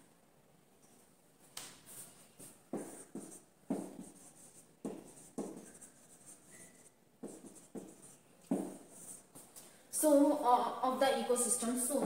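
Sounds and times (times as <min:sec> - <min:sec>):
marker pen writing on whiteboard: 0:01.8 - 0:09.6.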